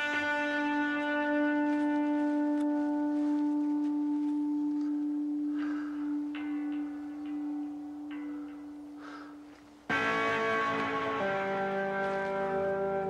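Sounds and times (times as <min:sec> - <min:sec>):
electric guitar notes ringing: 0:00.0 - 0:13.0.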